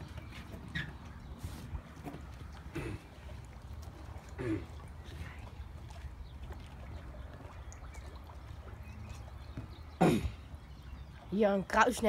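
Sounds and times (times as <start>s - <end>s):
water lapping and trickling: 0.0s - 12.0s.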